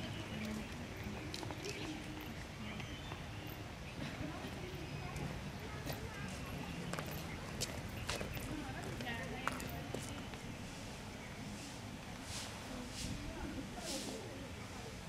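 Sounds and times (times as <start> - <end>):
group of people talking: 0.0 - 15.0.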